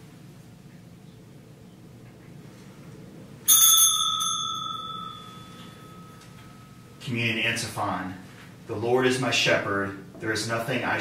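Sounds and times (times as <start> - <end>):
small bell ringing: 3.5 - 7.0.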